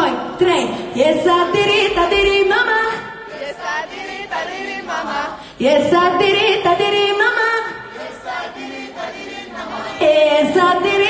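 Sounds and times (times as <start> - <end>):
pop song over a pa system: 0.0 - 11.0.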